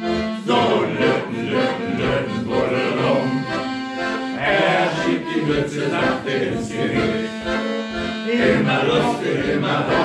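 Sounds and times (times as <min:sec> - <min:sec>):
accordion playing shanty tune: 0:00.0 - 0:10.0.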